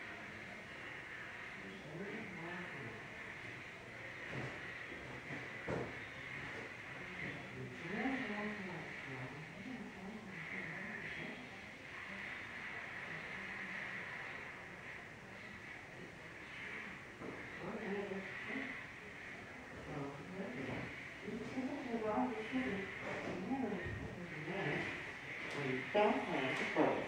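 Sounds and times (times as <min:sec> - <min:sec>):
muffled radio talk: 0:19.4 - 0:27.0.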